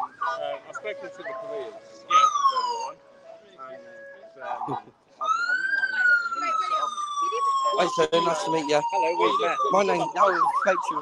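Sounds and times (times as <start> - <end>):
police siren wailing: 0.0 - 3.3, 5.2 - 11.0
voices talking: 0.0 - 11.0.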